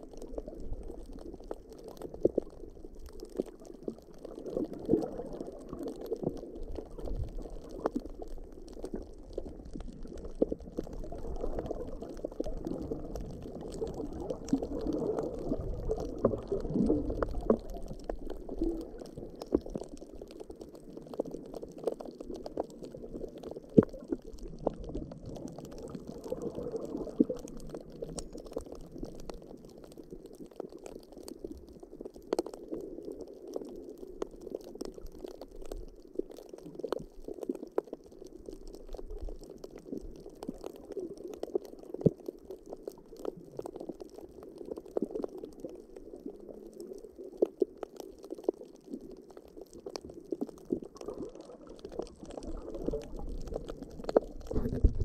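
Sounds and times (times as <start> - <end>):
underwater clicks and crackles: 0.0 - 55.0
underwater rush of moving water: 0.0 - 55.0.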